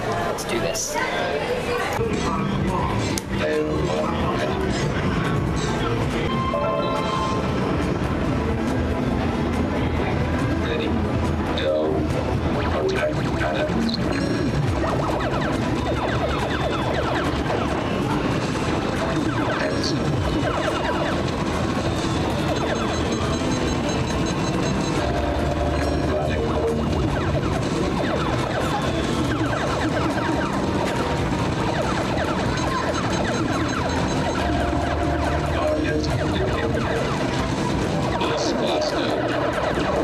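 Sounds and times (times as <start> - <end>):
arcade game music: 2.1 - 40.0
arcade game laser zaps: 12.5 - 40.0.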